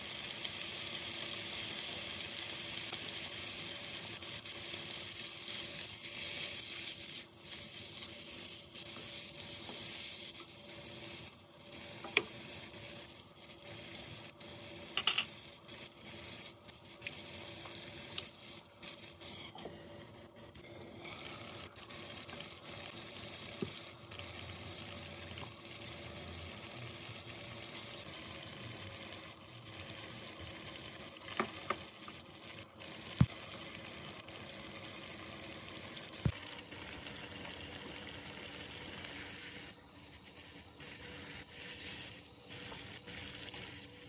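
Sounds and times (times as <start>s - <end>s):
food sizzling in a pan: 0.0s - 44.0s.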